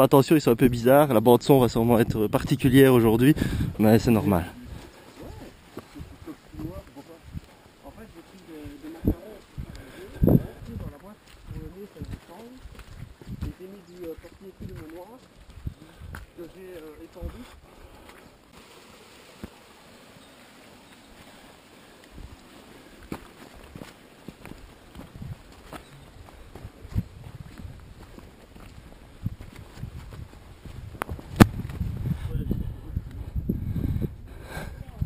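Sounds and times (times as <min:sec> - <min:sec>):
footsteps on leaves: 0:04.2 - 0:31.9.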